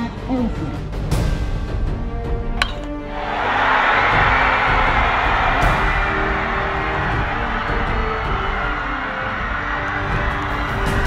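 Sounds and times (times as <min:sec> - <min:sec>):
background music with held notes: 0:00.0 - 0:11.0
crowd cheering: 0:03.0 - 0:11.0.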